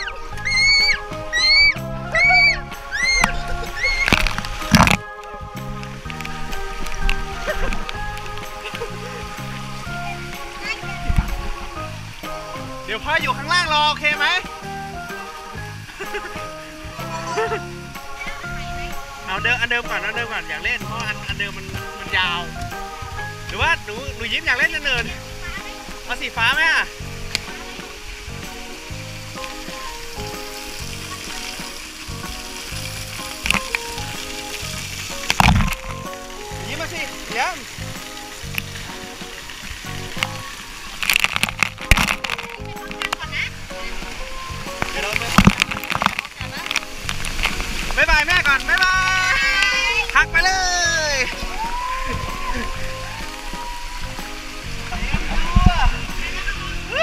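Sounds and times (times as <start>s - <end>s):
music of held notes: 0.0s - 57.0s
water splashes: 0.0s - 57.0s
water spray hissing: 0.0s - 57.0s.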